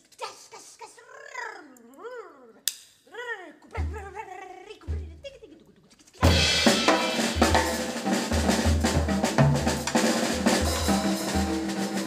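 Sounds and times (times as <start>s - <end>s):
low drum thumps: 6.2s - 11.8s.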